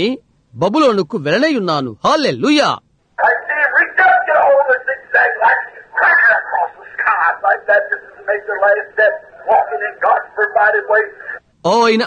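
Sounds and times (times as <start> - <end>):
person talking over telephone: 3.2 - 11.4.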